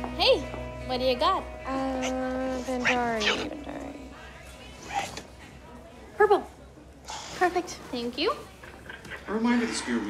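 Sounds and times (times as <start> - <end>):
murmur of voices: 1.4 - 10.0.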